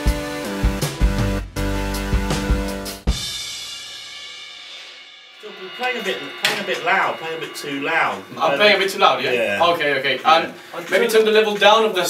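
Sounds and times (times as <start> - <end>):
backing track music: 0.0 - 10.3
drum kit playing: 0.0 - 11.0
person speaking: 5.4 - 12.0.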